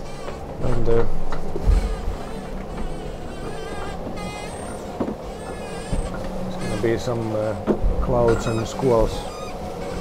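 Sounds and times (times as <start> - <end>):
wavering high whine: 0.0 - 10.0.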